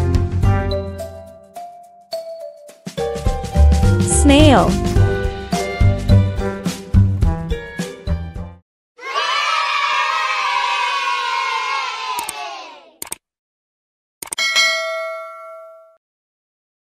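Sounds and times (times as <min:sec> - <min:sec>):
children cheering and shouting: 0:09.0 - 0:13.0
short clicks: 0:13.0 - 0:13.2
bright bell ding: 0:14.4 - 0:16.0.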